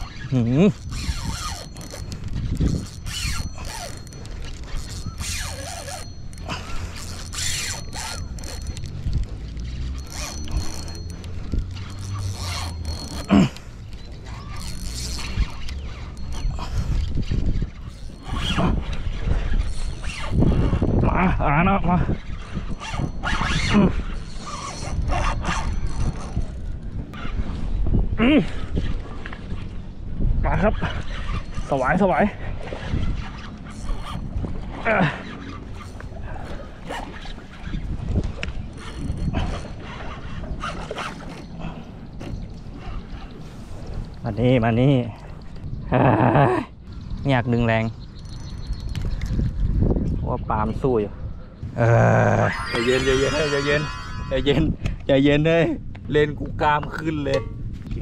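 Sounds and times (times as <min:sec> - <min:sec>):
spinning reel whirring: 0:00.0 - 0:21.1, 0:22.1 - 0:26.6, 0:32.7 - 0:36.1, 0:36.8 - 0:41.5, 0:52.2 - 0:54.8.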